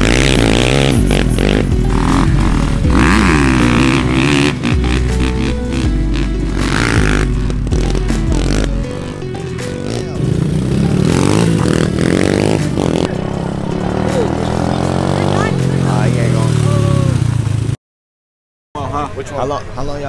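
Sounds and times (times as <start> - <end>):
music with heavy bass: 0.0 - 17.3
dirt bike engines revving: 0.0 - 17.8.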